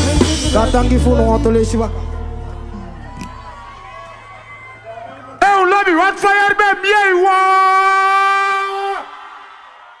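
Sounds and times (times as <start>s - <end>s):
echo of voice: 0.0s - 9.2s.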